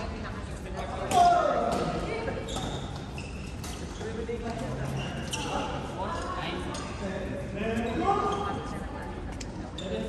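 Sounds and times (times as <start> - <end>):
indistinct voices in echoing hall: 0.0 - 10.0.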